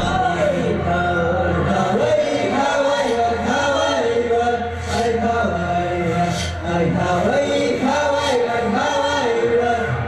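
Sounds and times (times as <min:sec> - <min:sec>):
low drone: 0:00.0 - 0:01.0
voices chanting together: 0:00.0 - 0:10.0.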